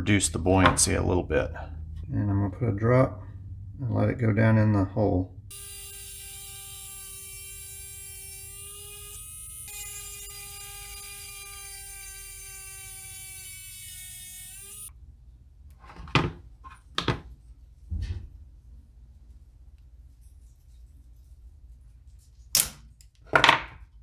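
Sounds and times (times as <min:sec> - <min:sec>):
rotary carving tool whining: 0:05.5 - 0:14.9.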